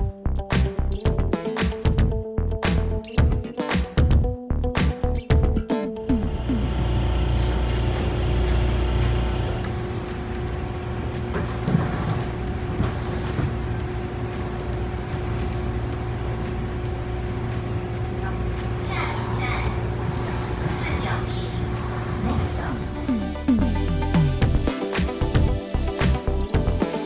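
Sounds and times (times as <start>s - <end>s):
train machinery drone: 6.2s - 23.5s.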